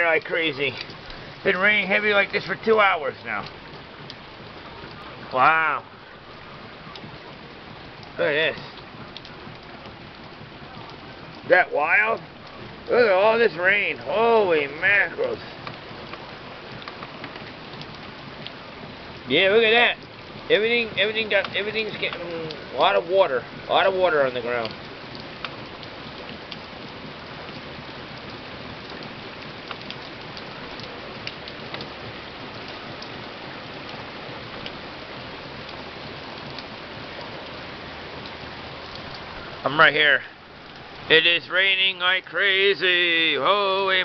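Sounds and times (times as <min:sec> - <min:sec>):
heavy rain pouring: 0:00.0 - 0:44.0
water drips: 0:00.0 - 0:44.0.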